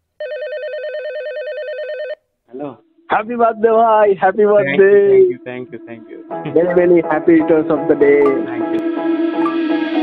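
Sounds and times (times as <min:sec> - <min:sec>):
electronic telephone ring: 0:00.2 - 0:02.2.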